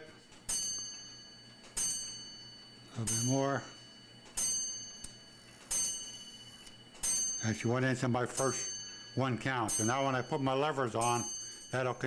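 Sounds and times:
clock bell ringing: 0:00.0 - 0:12.0.

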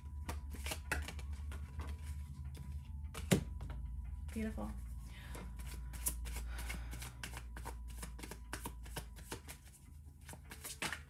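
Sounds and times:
cards being shuffled: 0:00.0 - 0:02.3, 0:05.4 - 0:11.0.

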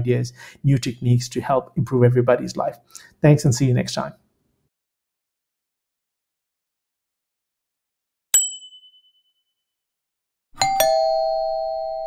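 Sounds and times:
two-note bell chime: 0:10.6 - 0:12.0.

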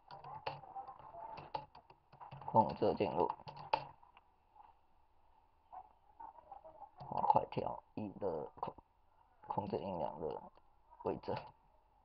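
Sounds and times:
keyboard typing: 0:00.0 - 0:04.2.

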